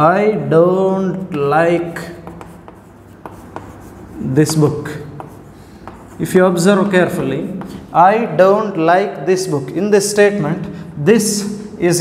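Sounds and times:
chalk scratching on chalkboard: 0:01.2 - 0:08.0.

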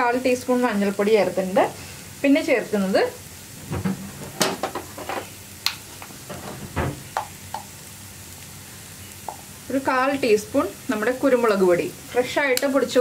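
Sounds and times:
onions sizzling in oil: 0:00.0 - 0:13.0.

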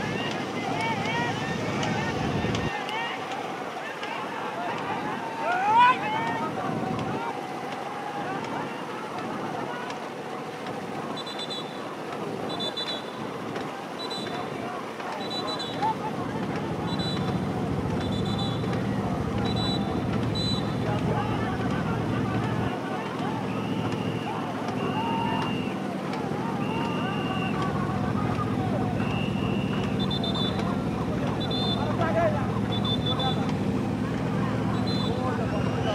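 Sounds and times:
boat motor running: 0:00.0 - 0:35.9
people shouting: 0:00.0 - 0:35.9
river water rushing: 0:00.0 - 0:35.9.

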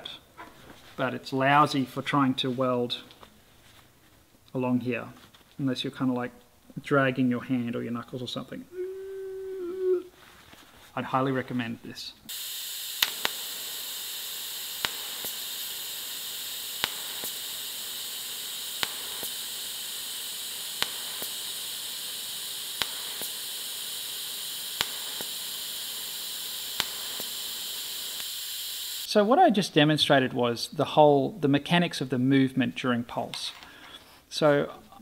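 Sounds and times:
sharp ticks of welding pulse: 0:12.3 - 0:29.1
welding arc hissing: 0:12.3 - 0:29.2.

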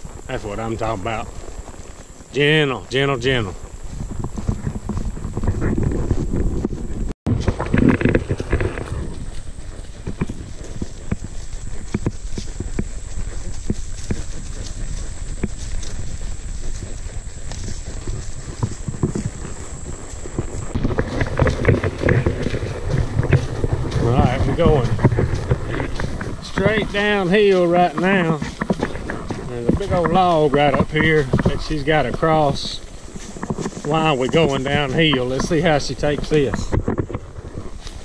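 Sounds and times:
grass brushing: 0:00.0 - 0:38.0
mule hooves on ground: 0:00.0 - 0:38.0.

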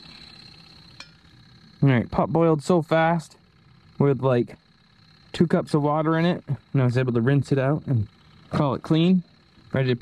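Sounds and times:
thin high whine: 0:00.0 - 0:10.0
metallic click of pliers on pot: 0:01.0 - 0:01.2.

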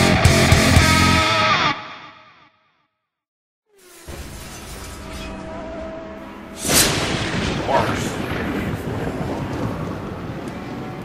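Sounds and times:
explosion with low rumble: 0:06.6 - 0:10.5.

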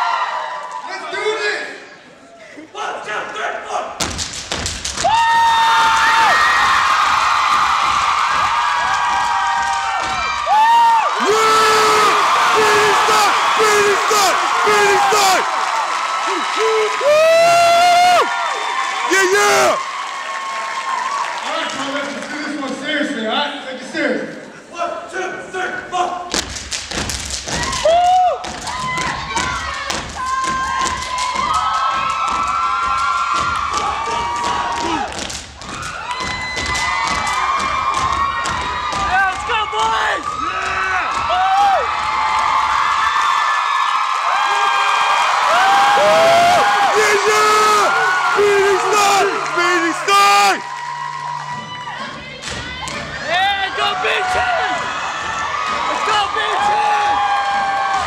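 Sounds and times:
audience cheering and whooping: 0:00.0 - 0:01.0, 0:05.0 - 0:21.9, 0:27.5 - 0:58.0
feet stomping on wooden stage: 0:04.0 - 0:10.7, 0:26.3 - 0:43.0.

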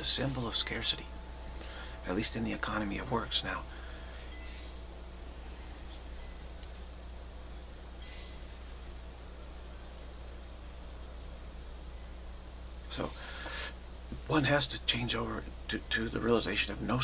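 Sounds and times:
small birds chirping: 0:00.0 - 0:17.0
steady low hum: 0:00.0 - 0:17.0.

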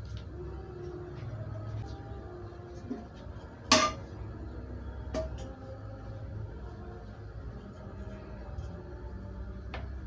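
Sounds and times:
soft background music: 0:00.0 - 0:10.0
kitchenware clinking: 0:03.7 - 0:04.1.

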